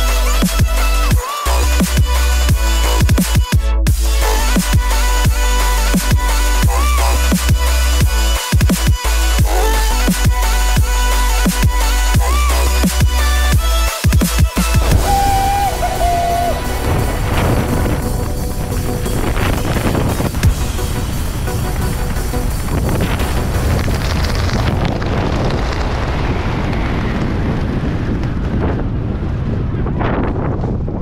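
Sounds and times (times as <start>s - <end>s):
background music: 0.0s - 24.2s
wind rushing across microphone: 14.7s - 31.0s.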